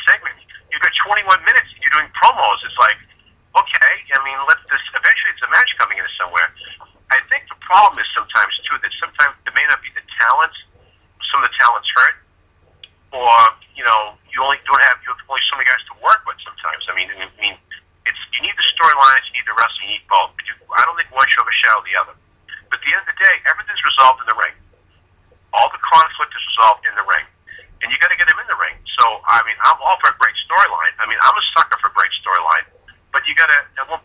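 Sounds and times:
man talking over telephone: 0.0s - 12.2s, 13.2s - 24.6s, 25.6s - 34.0s.

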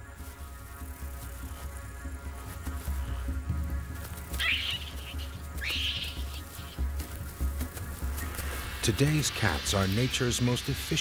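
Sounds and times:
background music with pulsing beat: 0.0s - 11.0s
harsh animal cries: 4.4s - 6.8s.

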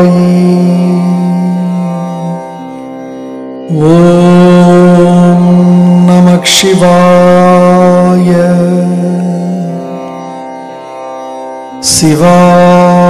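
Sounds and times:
voice chanting mantra: 0.0s - 2.6s, 3.7s - 10.2s, 11.7s - 13.0s
steady drone: 0.0s - 13.0s.

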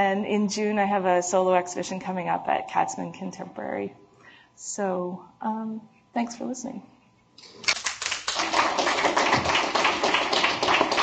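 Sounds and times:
audience applauding: 7.4s - 11.0s.

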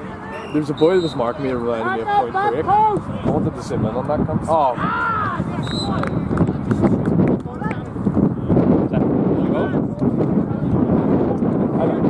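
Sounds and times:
wind buffeting microphone: 1.5s - 12.0s
footballers shouting: 4.7s - 6.0s.

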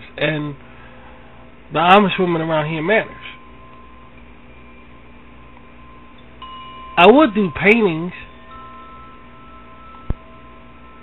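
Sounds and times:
low background hum: 0.0s - 11.0s
ringing chime tones: 1.8s - 11.0s.

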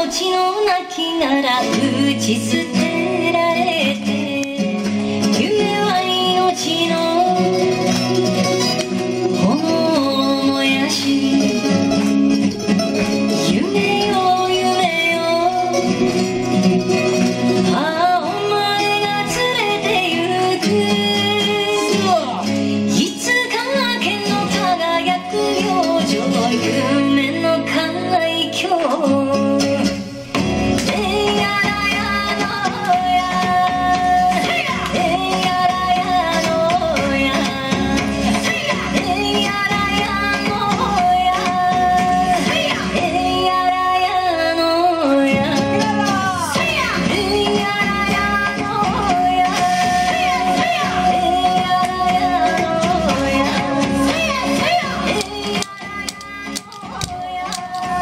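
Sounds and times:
dance song with singer and guitar: 0.0s - 58.0s.

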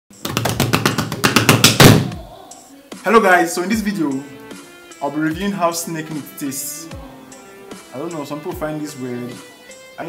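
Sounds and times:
loud drum hit: 1.5s - 2.3s.

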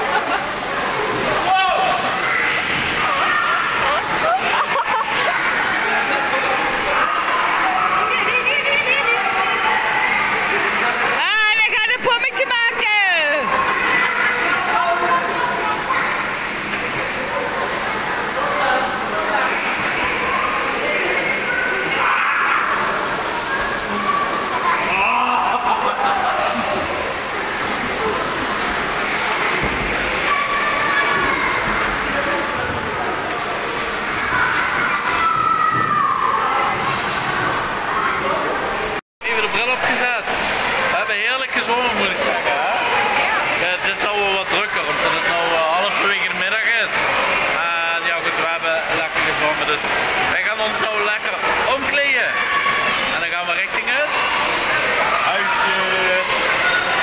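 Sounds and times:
babble of swimmers' voices: 0.0s - 57.0s
water sloshing and splashing: 0.0s - 57.0s.

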